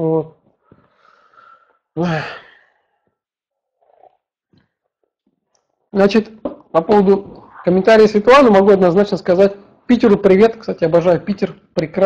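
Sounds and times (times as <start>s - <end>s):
man sighing: 1.0s - 2.8s.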